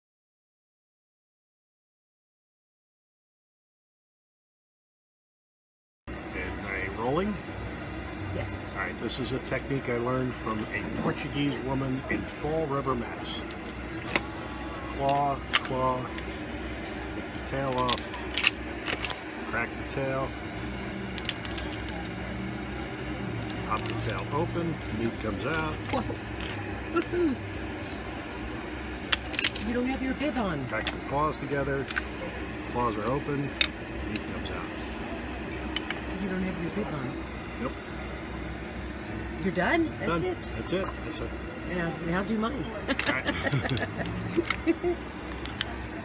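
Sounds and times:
steady low hum: 6.1 - 46.0
shell cracking and snapping: 21.2 - 22.2
person laughing: 42.9 - 45.0.

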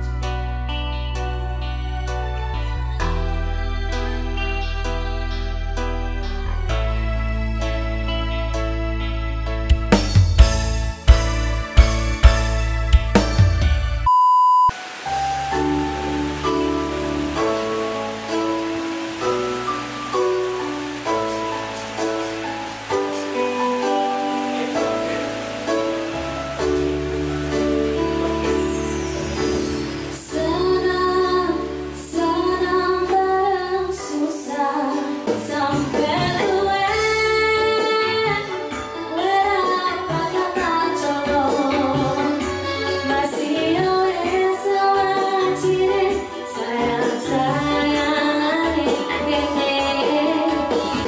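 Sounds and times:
band with keyboard: 0.0 - 14.2, 15.1 - 51.0
band music with drum hits: 9.7 - 14.1
high bleep tone: 14.0 - 14.8
woman singing into microphone: 30.1 - 51.0.

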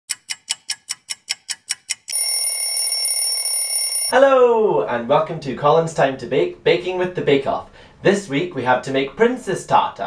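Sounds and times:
clock ticking fast: 0.1 - 4.1
alarm bell ringing: 2.1 - 4.2.

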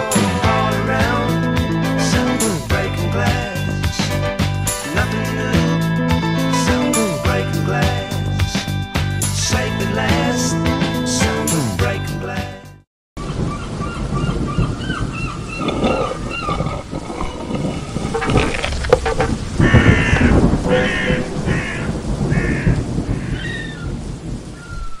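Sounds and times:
harsh bird calls: 13.2 - 17.6, 19.5 - 24.0, 24.6 - 25.0
birds chirping: 13.2 - 24.0
rumbling background noise: 13.5 - 24.6.

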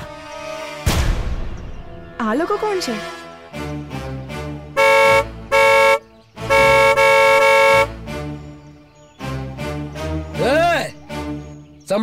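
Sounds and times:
vehicle horn honking: 4.8 - 7.9.

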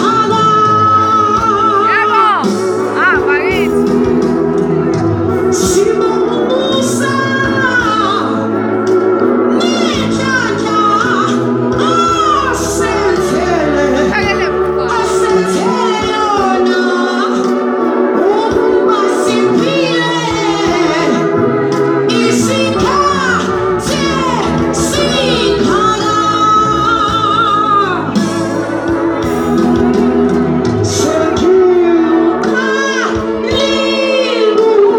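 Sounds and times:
woman singing into microphone: 0.0 - 8.8, 9.5 - 34.9
amplified backing music: 0.0 - 34.9.

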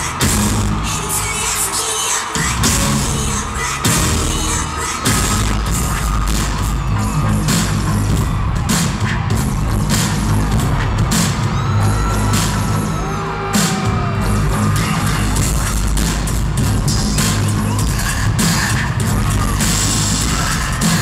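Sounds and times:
live concert music: 0.0 - 21.0.

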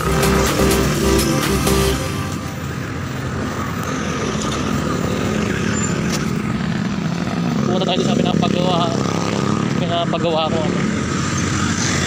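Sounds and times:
road traffic engine rumble: 0.0 - 12.0.

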